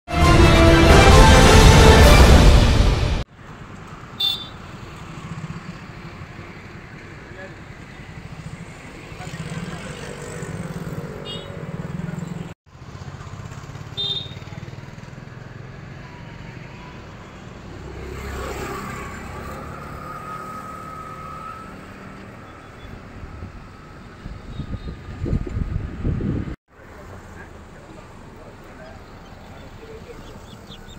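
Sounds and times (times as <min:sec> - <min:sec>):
road traffic rumble: 0:00.1 - 0:30.9.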